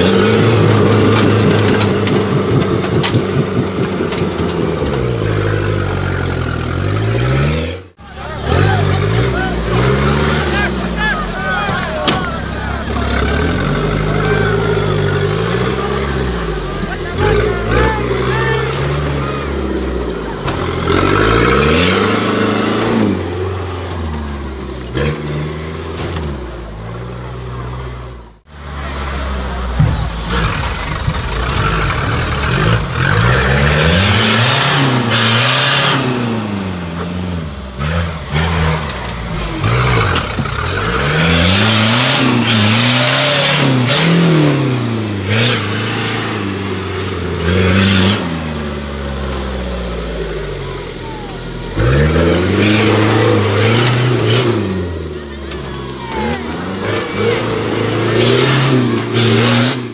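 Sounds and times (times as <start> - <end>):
buggy engines revving hard: 0.0 - 59.9.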